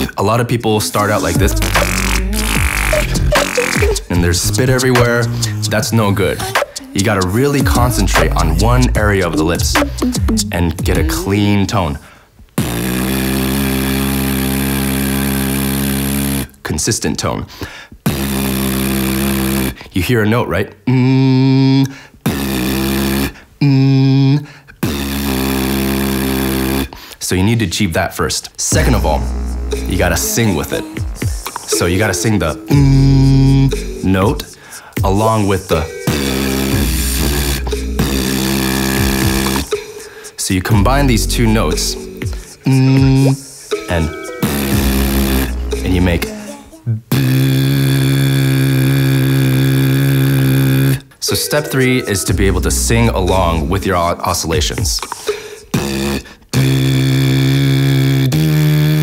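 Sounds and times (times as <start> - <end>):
lips buzzing a pitched note: 0.9 - 11.6, 12.6 - 16.6, 18.0 - 19.8, 20.9 - 27.0, 28.7 - 54.1, 55.0 - 59.0.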